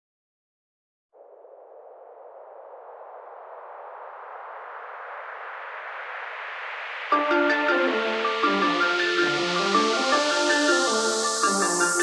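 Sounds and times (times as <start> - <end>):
synthesized noise riser: 1.2 - 12.0.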